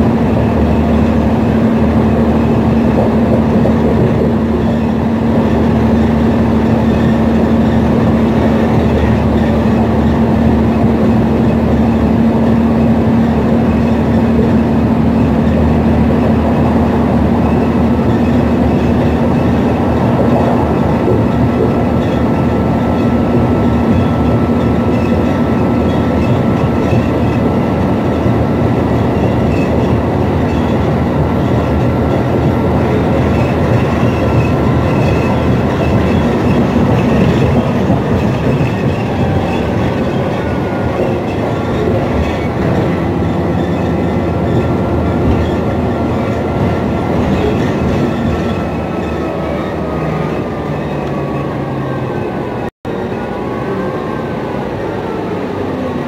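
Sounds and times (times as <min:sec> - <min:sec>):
bus engine running: 0:00.0 - 0:56.0
road and rattle noise: 0:00.0 - 0:56.0.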